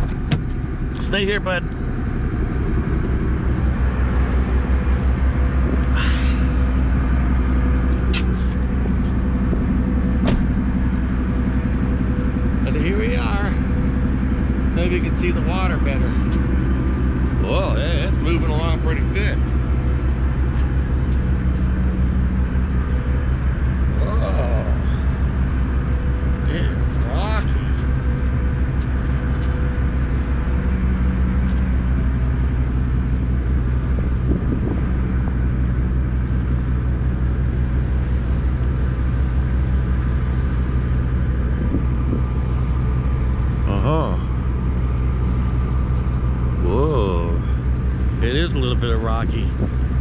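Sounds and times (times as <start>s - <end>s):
ship engine droning: 0.0s - 50.0s
wind: 0.0s - 50.0s.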